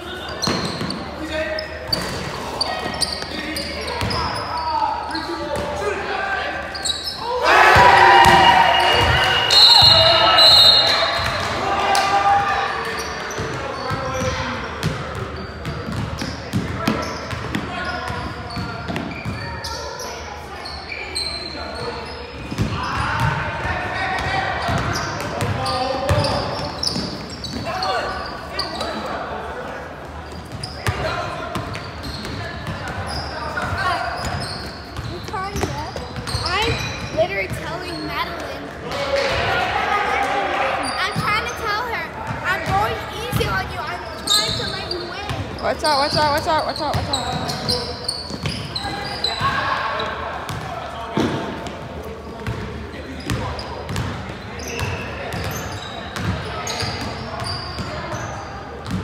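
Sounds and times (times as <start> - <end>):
players shouting in a gym: 0.0 - 59.0.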